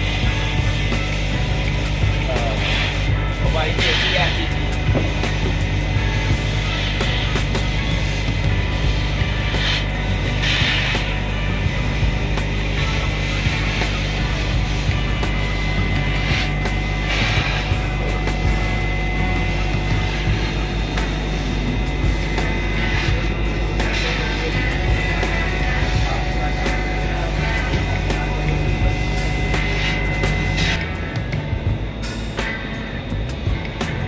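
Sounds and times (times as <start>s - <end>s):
higher whir: 0.0s - 34.0s
laser cutting machine running: 0.0s - 34.0s.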